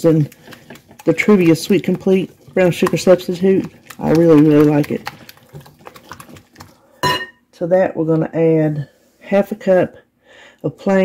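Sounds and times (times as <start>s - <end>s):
whisk clicking in glass bowl: 0.0s - 6.8s.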